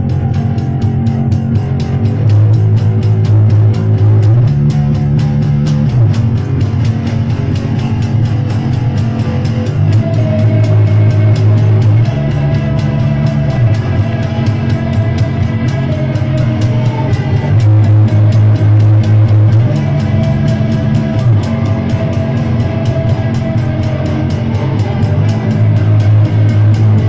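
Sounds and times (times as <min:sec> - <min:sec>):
fast drum beat: 0:00.0 - 0:27.0
low bass notes: 0:00.0 - 0:27.0
rock band playing live: 0:00.0 - 0:27.0.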